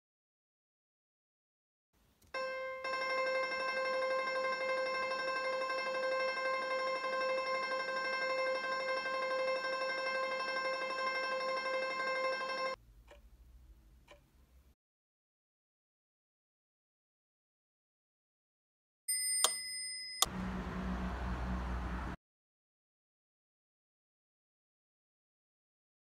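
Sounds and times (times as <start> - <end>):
steady held note: 2.4 - 12.8.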